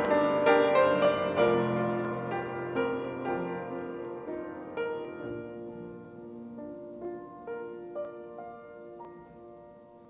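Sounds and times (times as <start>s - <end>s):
piano playing slow chords: 0.0s - 10.0s.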